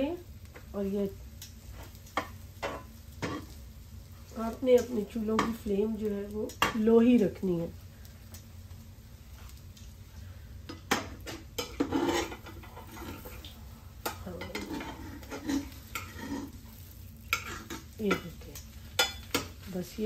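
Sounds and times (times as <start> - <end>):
faint sizzle of frying: 0.0 - 20.0
utensil scraping frying pan: 1.0 - 7.3, 10.7 - 20.0.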